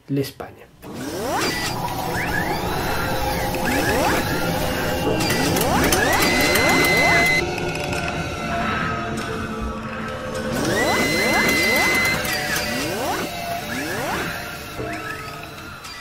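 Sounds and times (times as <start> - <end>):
mechanical clicking and whirring: 0.8 - 8.2, 10.3 - 16.0
rising sweeps: 0.9 - 15.8
held high tone: 2.5 - 7.5.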